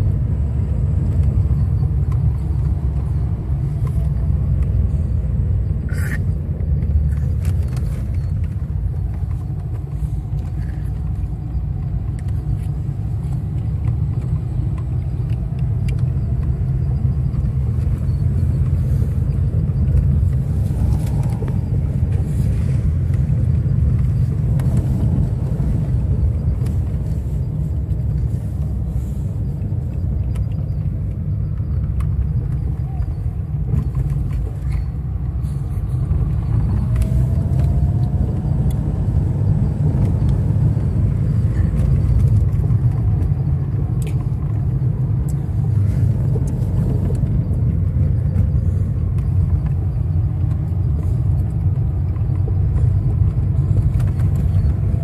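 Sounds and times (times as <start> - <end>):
car engine rumble: 0.0 - 55.0
tyres on road: 0.0 - 55.0.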